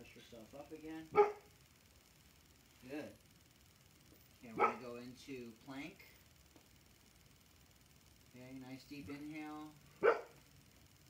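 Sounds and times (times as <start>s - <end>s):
dog barking: 1.1s - 1.5s, 4.6s - 4.8s, 10.0s - 10.4s.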